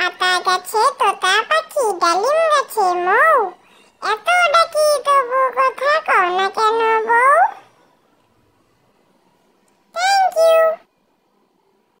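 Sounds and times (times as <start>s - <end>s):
squeaky cartoon voice: 0.0s - 7.6s, 10.0s - 10.9s.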